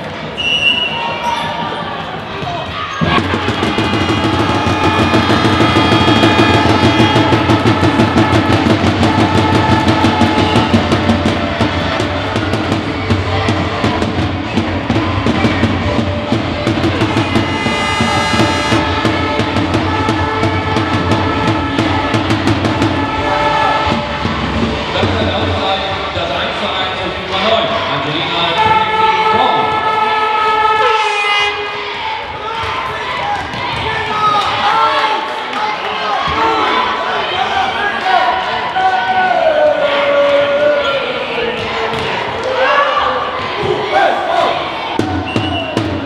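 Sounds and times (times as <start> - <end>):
music with drum beat over loudspeakers: 3.0 - 25.7, 45.0 - 46.0.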